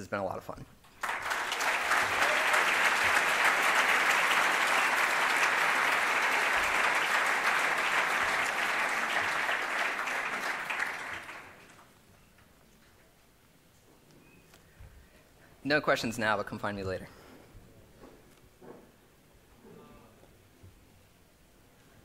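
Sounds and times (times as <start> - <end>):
audience applauding: 1.0 - 11.9.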